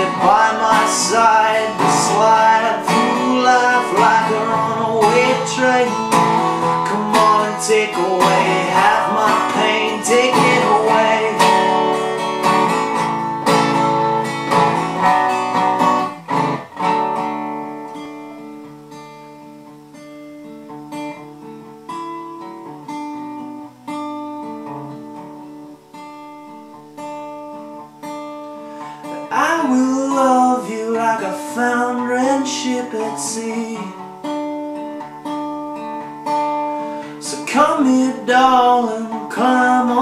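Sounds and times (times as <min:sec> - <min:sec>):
person singing: 0:00.0 - 0:13.0, 0:28.8 - 0:34.0, 0:37.0 - 0:40.0
resonator guitar strumming: 0:00.0 - 0:40.0.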